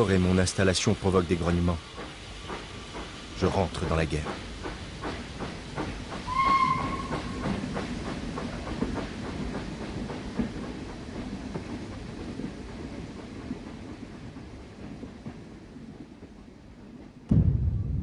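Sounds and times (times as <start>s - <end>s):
train wheels clattering on rails: 1.2s - 17.3s
steam train whistle: 6.3s - 7.4s.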